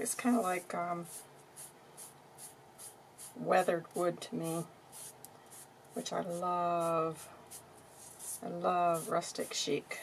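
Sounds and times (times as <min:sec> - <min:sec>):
sponge brushing on paper: 0:05.0 - 0:09.7.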